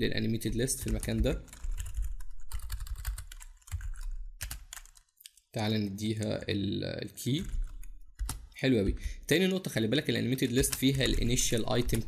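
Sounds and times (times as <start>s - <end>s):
computer keyboard typing: 0.4s - 5.2s, 7.4s - 9.2s, 10.4s - 12.0s.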